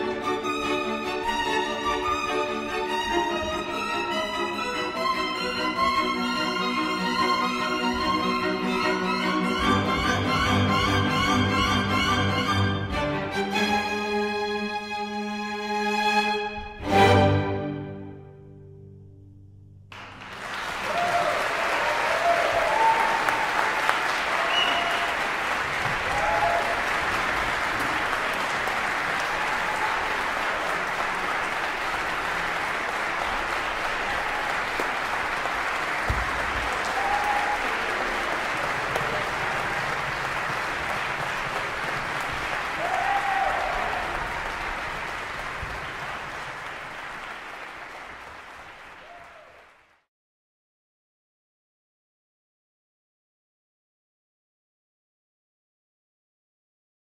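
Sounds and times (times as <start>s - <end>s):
string orchestra chord: 0.0s - 19.7s
applause: 19.9s - 50.1s
people cheering: 20.1s - 49.9s.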